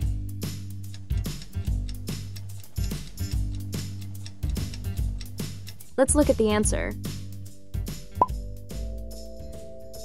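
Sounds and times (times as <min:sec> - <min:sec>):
light background music: 0:00.0 - 0:10.0.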